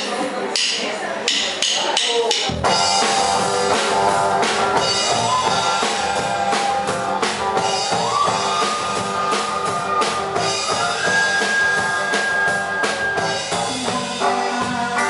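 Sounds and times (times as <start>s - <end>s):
drum kit: 0.0s - 15.0s
bass guitar: 2.4s - 15.0s
acoustic guitar: 2.5s - 15.0s
flute: 5.2s - 14.2s.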